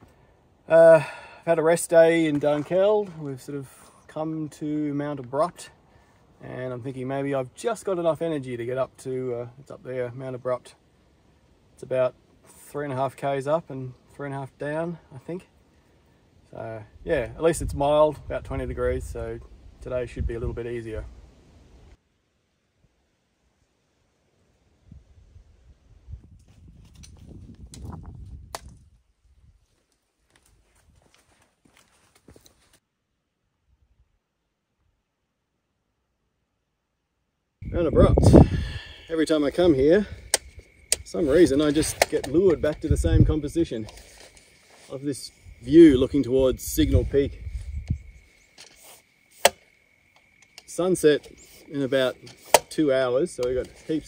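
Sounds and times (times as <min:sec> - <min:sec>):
footsteps on rocky trail: 0:02.2 - 0:03.9, 0:29.6 - 0:32.8
soft handling sounds: 0:43.7 - 0:45.2
trekking poles clicking on stone: 0:52.2 - 0:52.8.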